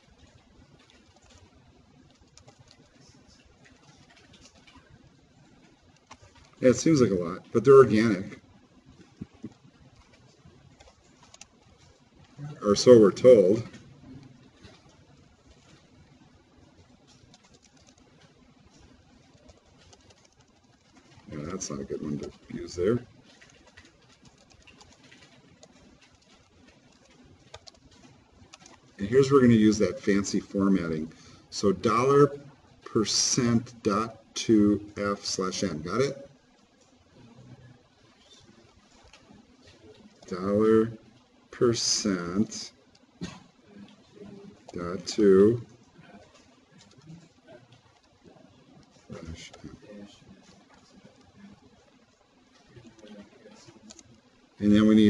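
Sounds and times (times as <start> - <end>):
faint keyboard typing: 0.0 - 55.0
low room noise: 0.0 - 55.0.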